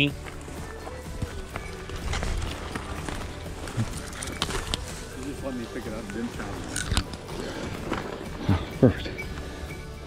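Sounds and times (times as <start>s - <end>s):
footsteps crunching through dry brush: 0.0s - 8.4s
background music: 0.0s - 10.0s.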